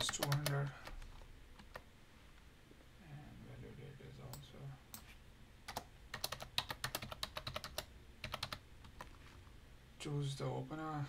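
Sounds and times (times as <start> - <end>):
typing on a keyboard: 0.0 - 1.9, 5.7 - 9.2.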